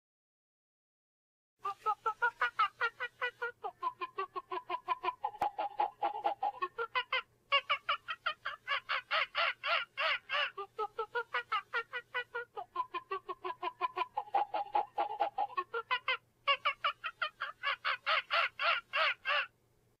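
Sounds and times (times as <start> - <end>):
toy monkey chuckling and chattering: 1.6 - 19.6.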